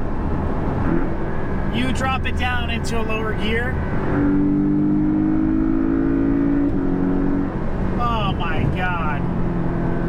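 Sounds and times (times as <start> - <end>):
car engine accelerating hard: 3.7 - 10.0.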